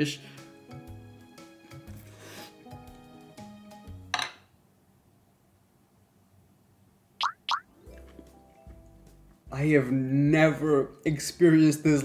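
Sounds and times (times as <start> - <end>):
background music: 0.0 - 4.2, 7.5 - 12.0.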